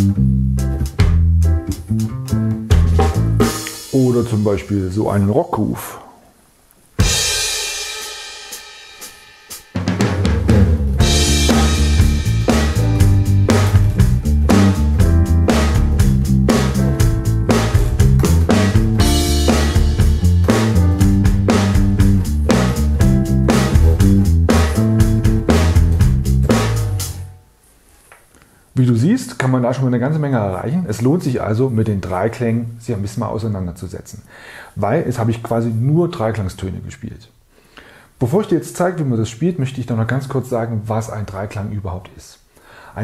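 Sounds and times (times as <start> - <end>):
electric bass groove: 0.0 - 4.4, 10.4 - 27.4
drum kit: 0.0 - 4.7, 7.0 - 27.3.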